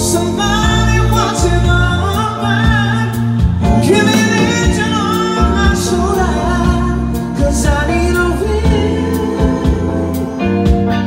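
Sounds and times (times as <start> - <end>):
person singing: 0.0 - 10.4
rock band playing: 0.0 - 11.0.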